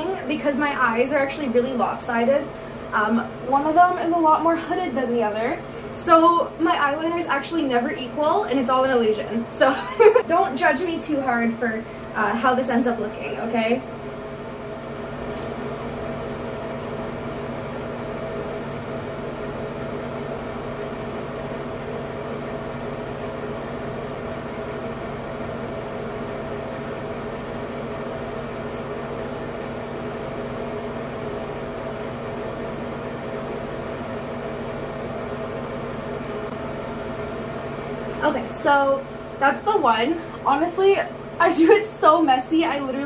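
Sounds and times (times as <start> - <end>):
ceiling fan humming: 0.0 - 43.0.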